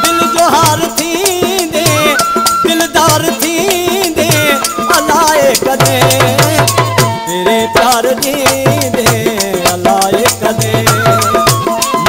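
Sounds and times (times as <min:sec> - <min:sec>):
hand drum beating quick rhythm: 0:00.0 - 0:12.0
harmonium tones: 0:00.0 - 0:12.0.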